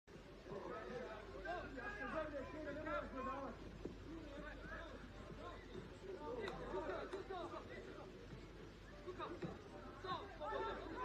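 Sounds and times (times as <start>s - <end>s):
players shouting to each other: 10.1s - 11.0s.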